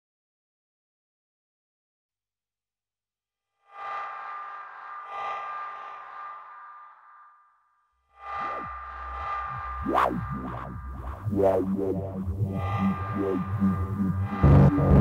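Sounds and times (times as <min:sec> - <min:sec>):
sliding synth pitch sweeps: 0:08.1 - 0:15.0
synthesizer chords: 0:08.1 - 0:15.0
deep bass drone: 0:08.2 - 0:15.0.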